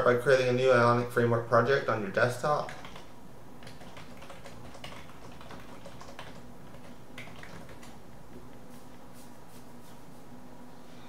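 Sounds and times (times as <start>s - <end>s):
faint steady hum: 0.0s - 11.0s
keyboard typing: 2.5s - 8.0s.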